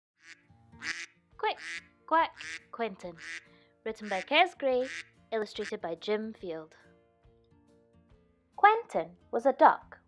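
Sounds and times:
soft background music: 0.2 - 10.0
woman reading aloud: 1.4 - 3.3, 3.9 - 6.8, 8.6 - 9.9.

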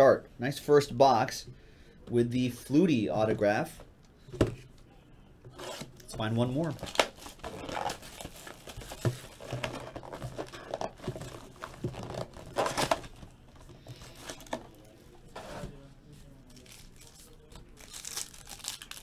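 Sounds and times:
packaging crinkling and tearing: 6.7 - 14.9, 16.5 - 19.0.

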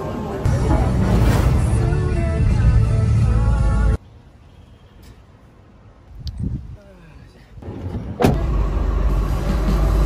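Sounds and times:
car rumbling: 0.4 - 4.0.

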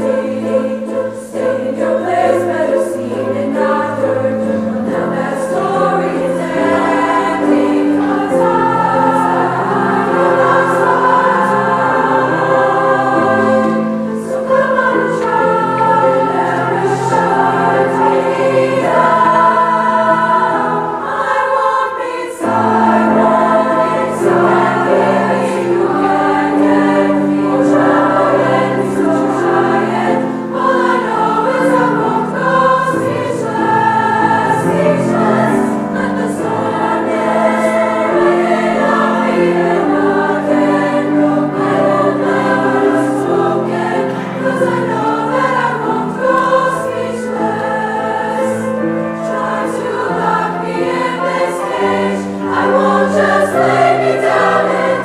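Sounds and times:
grand piano accompaniment: 0.0 - 55.0
women's choir singing: 0.0 - 55.0.

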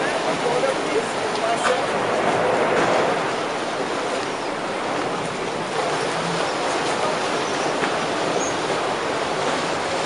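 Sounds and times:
boat engine rumbling: 0.0 - 10.0
propeller churning water: 0.0 - 10.0.

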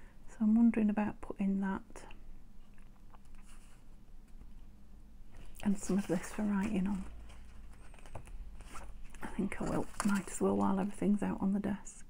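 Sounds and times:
paper rustling on cutting mat: 5.4 - 10.9.

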